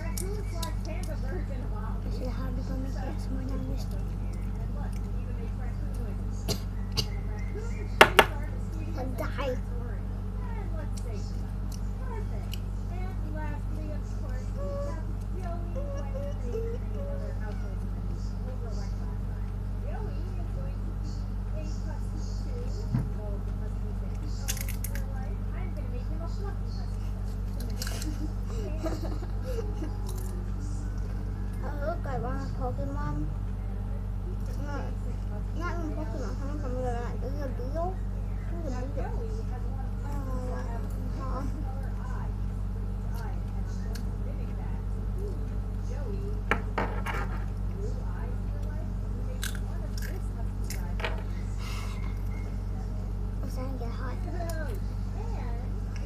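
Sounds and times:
electrical hum: 0.0s - 56.0s
crunchy chewing of wafer: 49.4s - 50.8s.

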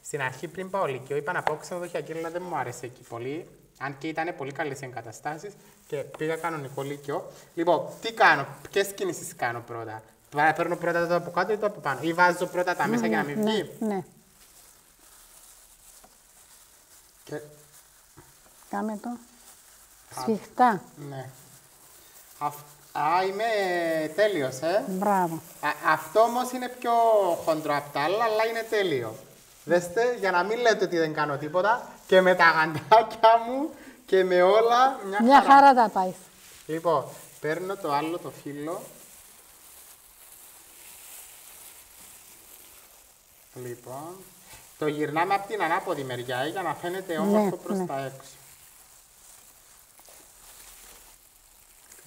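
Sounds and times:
plastic gloves rustling: 0.0s - 52.0s
soft hiss: 0.0s - 52.0s
person speaking: 4.4s - 14.1s, 20.1s - 21.5s, 22.4s - 39.0s, 43.6s - 48.4s.

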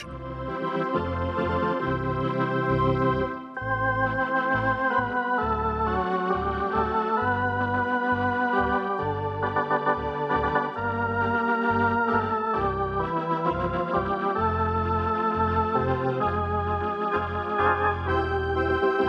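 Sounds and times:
electronic theatre organ playing: 0.0s - 19.0s.

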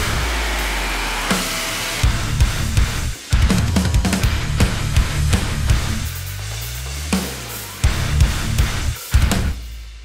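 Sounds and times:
distorted noisy guitar wash: 0.0s - 9.7s.

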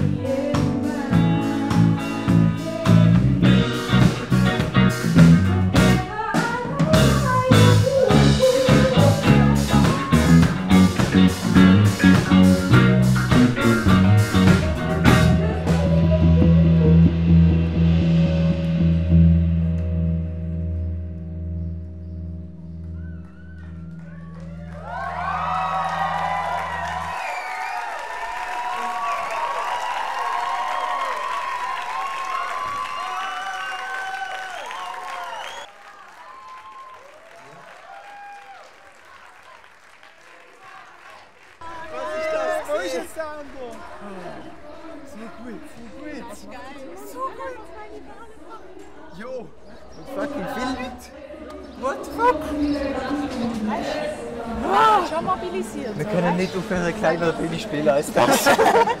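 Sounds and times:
crowd noise: 0.0s - 21.4s, 22.5s - 59.0s
live rock band playing: 0.0s - 27.3s
audience cheering and applauding: 22.8s - 45.2s, 58.2s - 59.0s.

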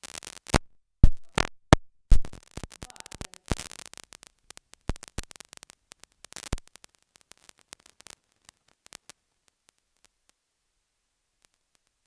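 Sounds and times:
static crackling clicks and pops: 0.0s - 12.0s.

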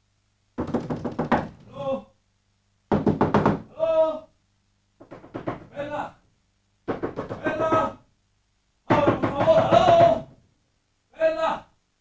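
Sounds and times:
rapid knocking on a door: 0.6s - 1.7s, 2.9s - 3.7s, 5.0s - 5.8s, 6.9s - 8.0s, 8.9s - 10.4s
person calling out: 1.6s - 2.2s, 3.7s - 4.4s, 7.4s - 8.0s, 8.9s - 10.4s.

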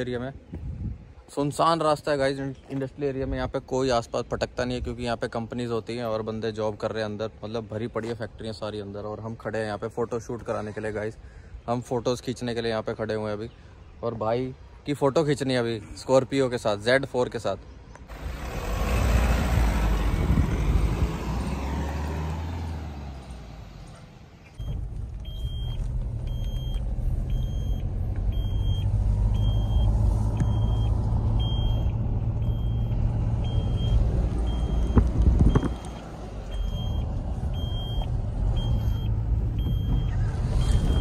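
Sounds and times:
engine and road rumble: 0.0s - 41.0s.

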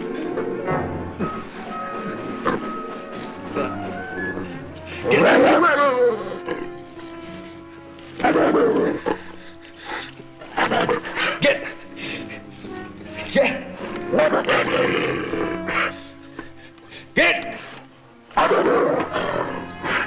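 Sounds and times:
orchestral film score: 0.0s - 20.0s
animal snarling: 2.4s - 20.0s.

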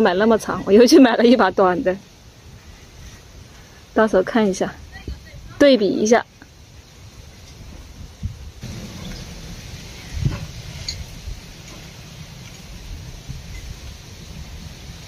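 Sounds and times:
low steady rumble: 0.0s - 15.0s.

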